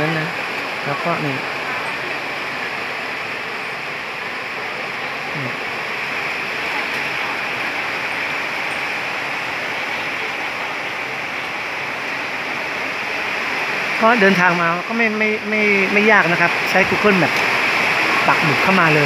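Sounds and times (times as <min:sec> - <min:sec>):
steady rain falling: 0:00.0 - 0:19.0.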